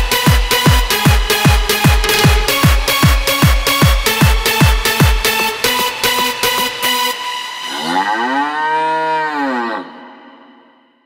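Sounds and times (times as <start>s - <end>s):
cow mooing: 7.7s - 10.6s.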